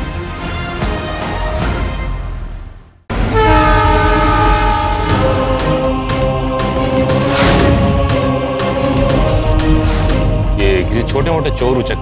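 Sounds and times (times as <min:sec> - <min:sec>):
horn-like chord: 0:03.2 - 0:06.3.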